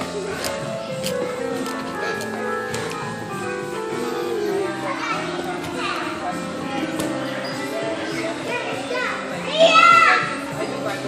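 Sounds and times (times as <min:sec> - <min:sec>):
background music: 0:00.0 - 0:11.0
children chattering: 0:00.0 - 0:11.0
child shouting: 0:09.5 - 0:10.3.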